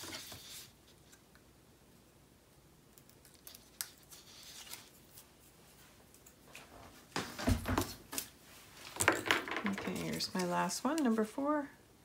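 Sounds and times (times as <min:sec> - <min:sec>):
paper sliding and rustling: 0:00.0 - 0:00.8, 0:04.0 - 0:05.2.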